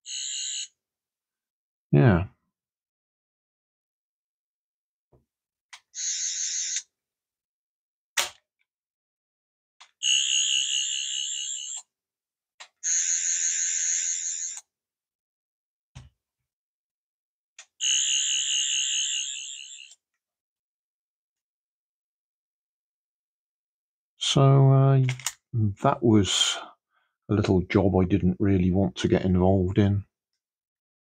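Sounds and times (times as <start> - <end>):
toy buzzing warbling sound effect: 18.4 - 20.0.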